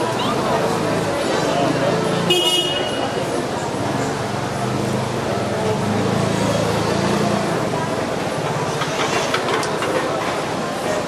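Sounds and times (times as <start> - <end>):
crowded street chatter: 0.0 - 11.0.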